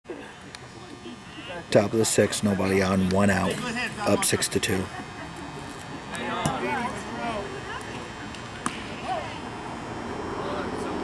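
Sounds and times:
scattered voices: 0.1 - 11.0.

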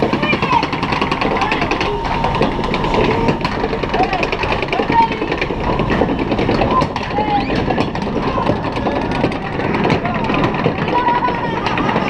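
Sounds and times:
indistinct voices: 0.0 - 12.0
loud steady rumble: 0.0 - 12.0
rapid clatter of clicks: 0.0 - 12.0.

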